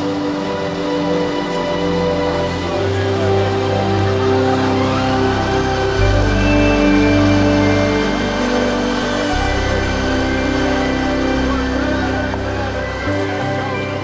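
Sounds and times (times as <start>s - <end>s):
bass line: 0.0s - 14.0s
sustained chords: 0.0s - 14.0s.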